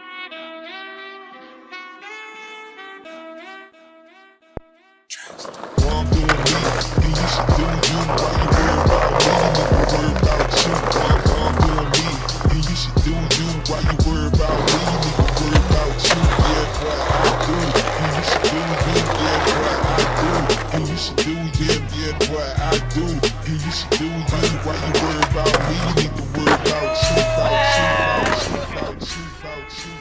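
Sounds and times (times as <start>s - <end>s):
skateboard wheels rolling on concrete: 5.1s - 29.8s
hip-hop backing track: 5.1s - 30.0s
skateboard deck clacking: 5.2s - 21.2s, 22.8s - 29.2s.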